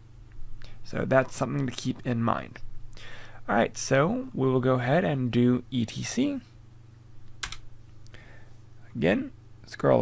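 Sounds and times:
keyboard keystroke: 7.3s - 7.7s.

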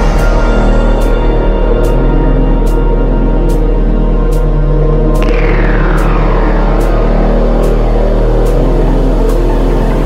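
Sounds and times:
heavy electronic bass music: 0.0s - 10.0s.

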